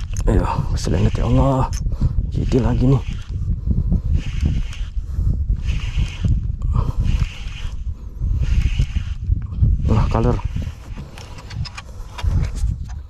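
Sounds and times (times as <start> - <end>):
fishing reel being cranked: 0.0 - 12.5
steady low rumble: 0.0 - 13.0.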